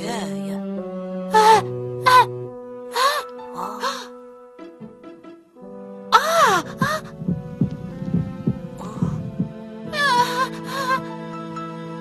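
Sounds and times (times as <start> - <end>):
cartoon heartbeat thuds: 6.4 - 9.6.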